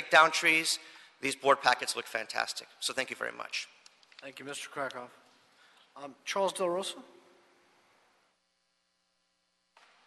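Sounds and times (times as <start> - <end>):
faint electrical hum: 0.0 - 10.0
room background hiss: 0.0 - 10.0.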